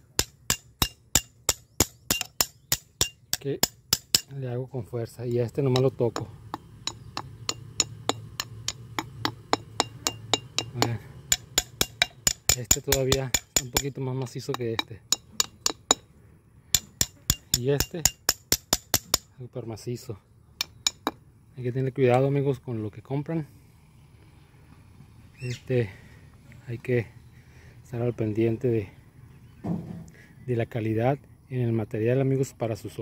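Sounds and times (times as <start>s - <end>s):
hard object tapping concrete block: 0.1s - 4.3s, 5.7s - 16.0s, 16.7s - 19.3s, 20.6s - 21.2s.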